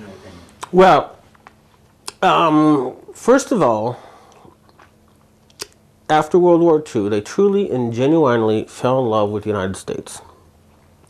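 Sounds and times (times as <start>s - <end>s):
faint mouth clicks: 5.5s - 5.8s.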